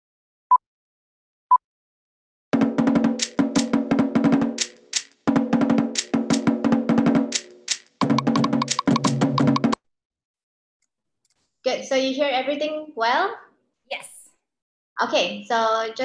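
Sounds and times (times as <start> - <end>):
deep drum: 2.6 - 4.6, 5.3 - 7.4, 8.0 - 9.8
slit drums rolling: 2.6 - 9.8.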